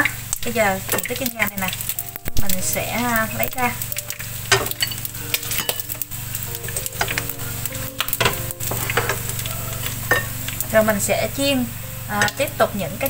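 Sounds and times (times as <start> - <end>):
deep-frying oil sizzling: 0.0 - 13.0.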